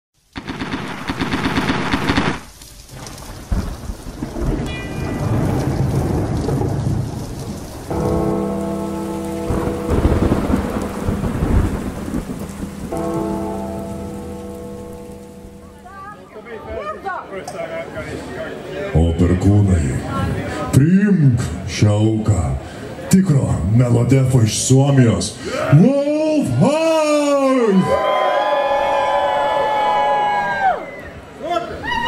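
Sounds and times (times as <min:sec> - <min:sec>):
rain: 0:00.2 - 0:32.0
rolling thunder: 0:00.4 - 0:15.8.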